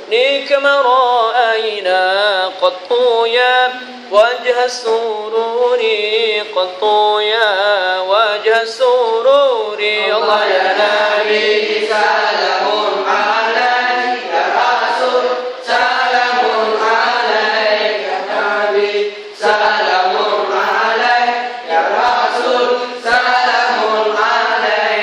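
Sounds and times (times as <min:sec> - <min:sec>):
men chanting in unison: 0:03.2 - 0:25.0.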